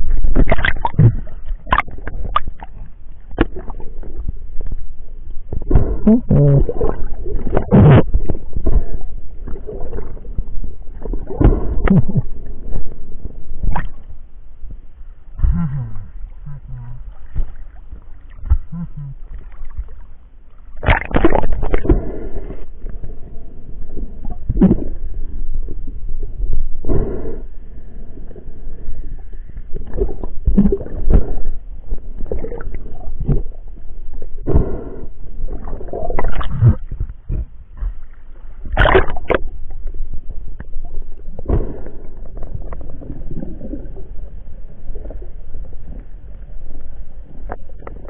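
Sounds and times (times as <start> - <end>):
water sloshing: 0.0 - 4.8, 35.4 - 40.0
low rumble: 0.0 - 48.0
muffled underwater water movement: 0.0 - 48.0
low hummed grunts: 5.6 - 6.9, 11.3 - 12.4, 15.4 - 17.6, 18.5 - 19.5, 36.5 - 38.0.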